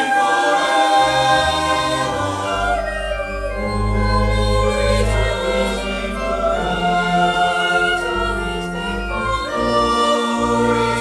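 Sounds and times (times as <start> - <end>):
choir of young voices singing: 0.0 - 11.0
deep organ bass notes: 1.0 - 11.0.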